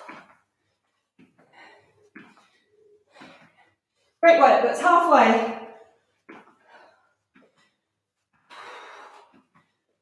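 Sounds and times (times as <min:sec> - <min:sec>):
woman breathing hard: 0:00.0 - 0:04.2, 0:05.8 - 0:10.0.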